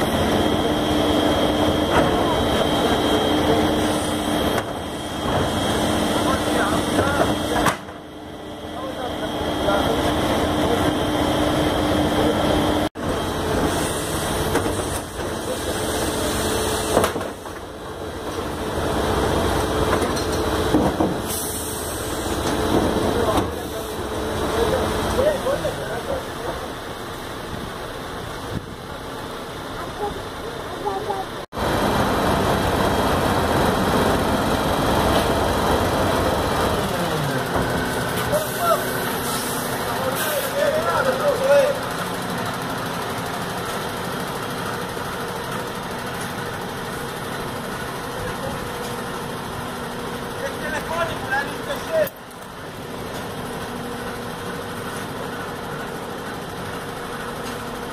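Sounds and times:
garbage truck running: 0.0 - 57.9
people talking: 1.8 - 5.4, 6.0 - 7.9, 8.7 - 11.3, 22.9 - 26.7, 29.7 - 31.5, 38.2 - 41.9, 48.0 - 49.2, 50.3 - 52.2.

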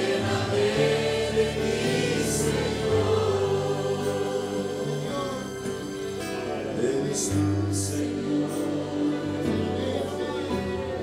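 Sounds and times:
congregation singing: 0.0 - 11.0
instrumental accompaniment: 0.0 - 11.0.

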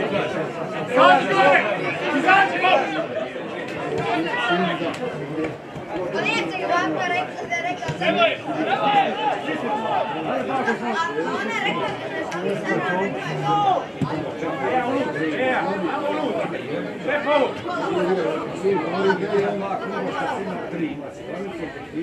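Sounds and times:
people talking and calling: 0.0 - 22.0.

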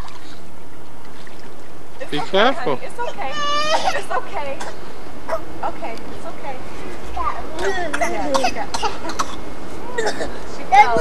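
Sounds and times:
young child babbling: 3.0 - 4.0, 7.2 - 8.6
child coughing: 3.6 - 5.4, 7.6 - 11.0.

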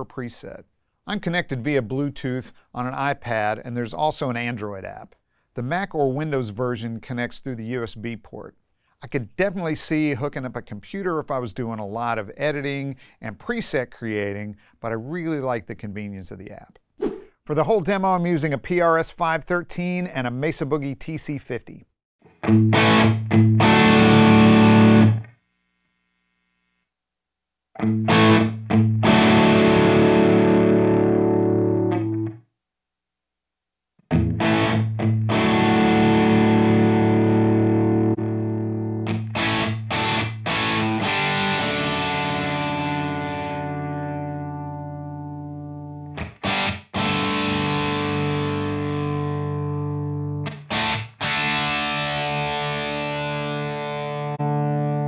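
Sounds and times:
distorted electric guitar chords: 22.3 - 25.3, 27.8 - 32.4, 34.1 - 55.0.

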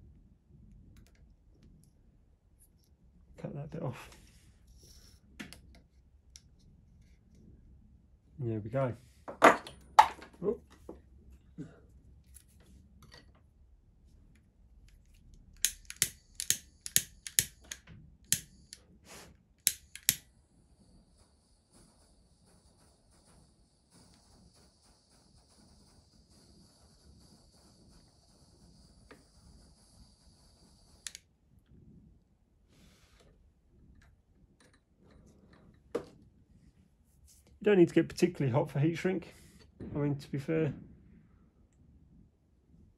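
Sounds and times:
torch igniter clicking: 15.6 - 18.8, 19.6 - 20.3
torch flame hissing: 18.3 - 31.2.

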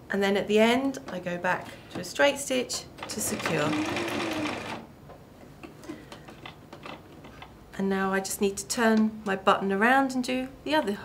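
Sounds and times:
sewing machine stitching: 3.0 - 4.9.

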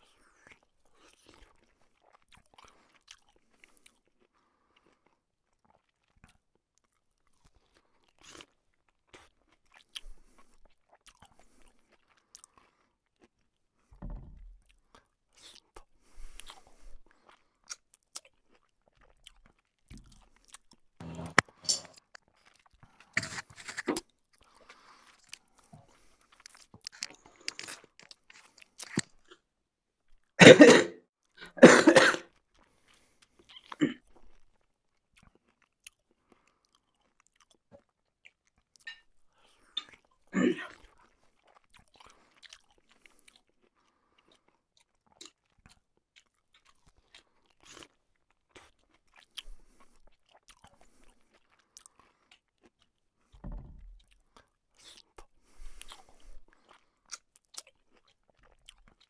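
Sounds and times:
man chewing and smacking food: 0.0 - 30.4, 31.2 - 59.0.

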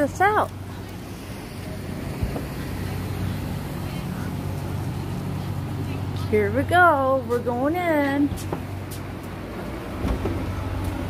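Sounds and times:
outdoor noise: 0.0 - 11.0
vehicle engines idling: 0.0 - 11.0.

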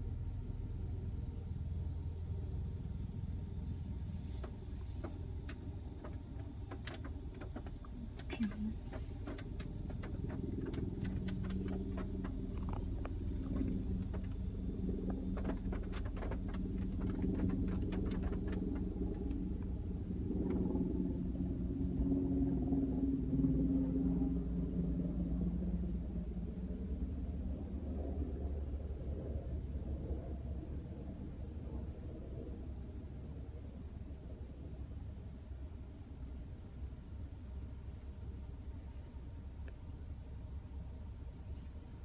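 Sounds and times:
car engine rumble inside cabin: 0.0 - 42.0.

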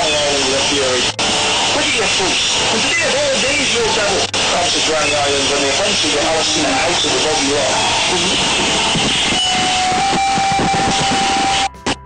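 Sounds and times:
loud steady hiss: 0.0 - 12.0
song recording: 0.0 - 12.0.

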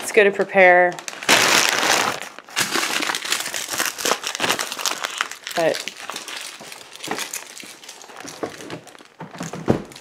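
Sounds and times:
rustling and crinkling: 0.0 - 10.0.

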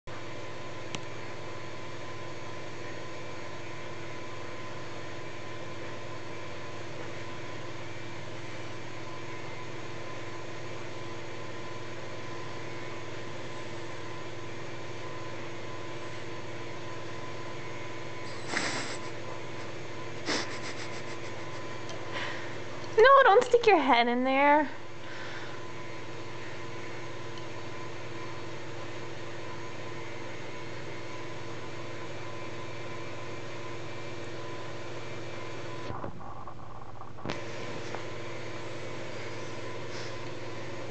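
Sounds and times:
mechanical room hum: 0.1 - 40.9.

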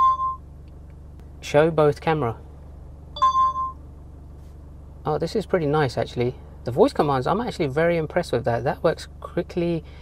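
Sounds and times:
dash cam electronic chime: 0.0 - 0.5, 3.2 - 3.8.

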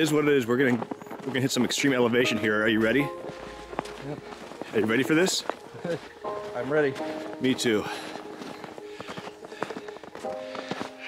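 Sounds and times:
footsteps on snow: 0.0 - 11.0
soft background music: 0.0 - 11.0.

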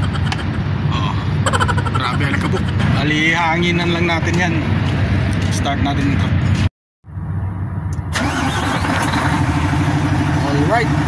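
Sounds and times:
diesel truck engine starting: 7.9 - 11.0.

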